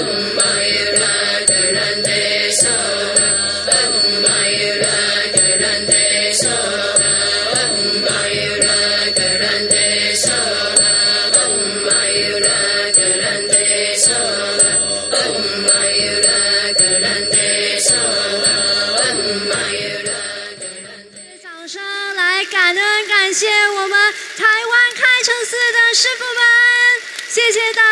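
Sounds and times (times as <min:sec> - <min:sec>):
mantra chanting: 0:00.0 - 0:21.2
light percussion strikes: 0:00.0 - 0:21.4.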